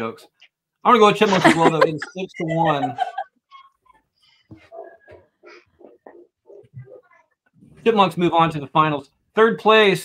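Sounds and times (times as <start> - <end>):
soft chuckling: 1.2 - 3.9.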